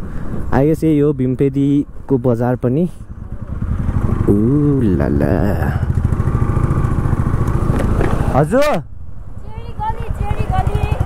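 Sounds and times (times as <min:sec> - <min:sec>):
motorcycle engine running: 0:03.0 - 0:08.5, 0:09.2 - 0:11.0.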